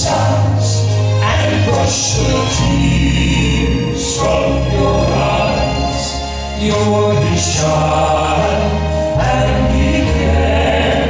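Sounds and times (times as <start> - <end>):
male quartet singing in harmony: 0.0 - 11.0.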